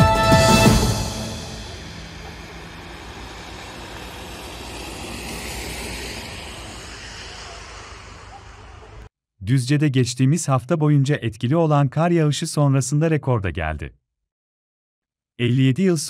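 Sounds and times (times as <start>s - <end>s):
music sting: 0.0s - 8.0s
traffic rumble and hiss: 1.4s - 9.1s.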